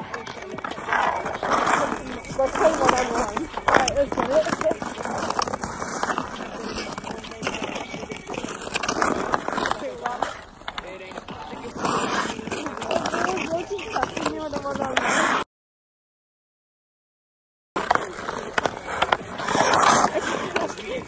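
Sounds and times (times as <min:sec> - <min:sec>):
indistinct voices: 0:00.0 - 0:15.2
skates and sticks scraping ice: 0:00.0 - 0:15.5, 0:17.8 - 0:21.0.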